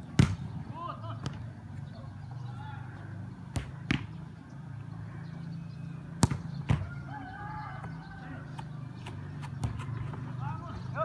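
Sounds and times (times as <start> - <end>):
football kicked hard thuds: 0.1 - 0.4, 6.2 - 6.9.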